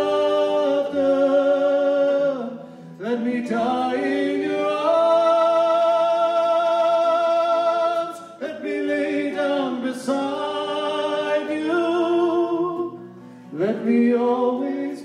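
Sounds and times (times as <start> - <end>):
acoustic guitar: 0.0 - 15.0
man and woman singing harmony: 0.0 - 15.0.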